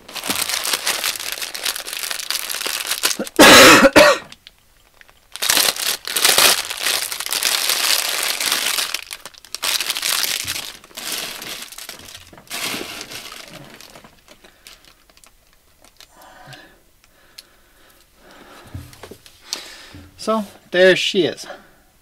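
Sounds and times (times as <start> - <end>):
plastic bag crinkling: 0.0 - 3.6, 4.3 - 16.1
loud cough: 3.2 - 4.3.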